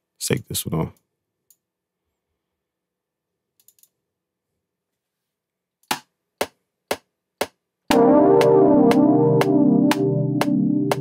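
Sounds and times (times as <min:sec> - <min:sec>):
metronome clicks: 0:07.9 - 0:11.0
synth chords: 0:07.9 - 0:11.0.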